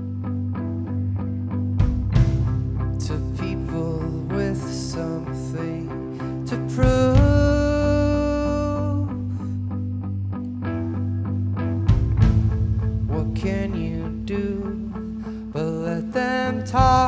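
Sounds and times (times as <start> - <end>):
picked electric guitar notes: 0.0 - 17.0
rock band playing: 1.8 - 3.0, 11.9 - 13.6.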